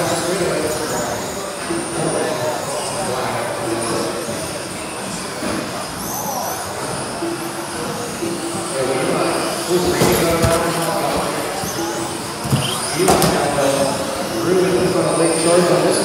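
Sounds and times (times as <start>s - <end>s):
reverberant hall hum: 0.0s - 16.0s.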